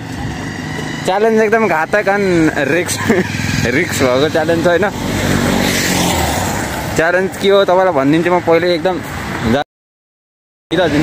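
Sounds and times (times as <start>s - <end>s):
vehicle engine and tyre noise: 0.0s - 9.6s, 10.7s - 11.0s.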